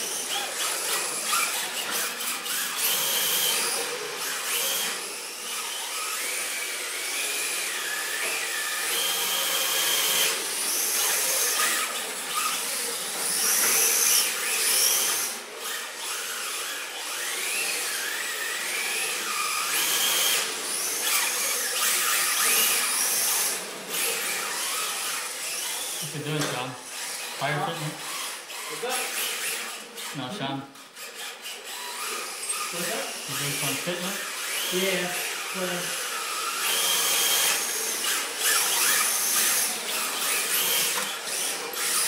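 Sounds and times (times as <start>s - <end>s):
toy car electric motor whining: 0.0s - 42.0s.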